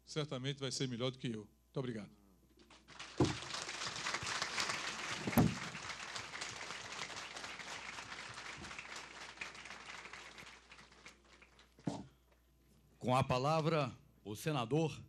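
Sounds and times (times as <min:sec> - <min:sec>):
audience applauding: 0:02.7 - 0:11.8
loud thump: 0:03.2 - 0:03.4, 0:05.3 - 0:05.7.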